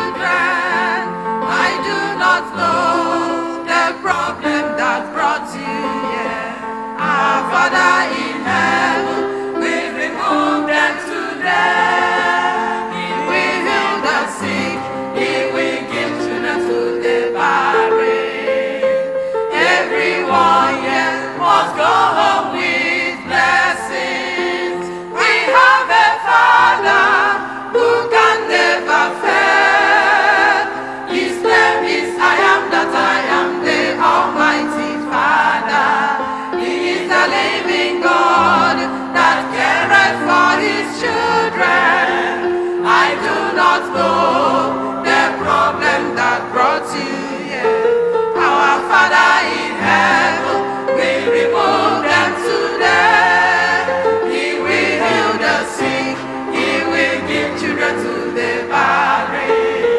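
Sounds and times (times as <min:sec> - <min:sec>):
choir singing gospel song: 0:00.0 - 0:59.9.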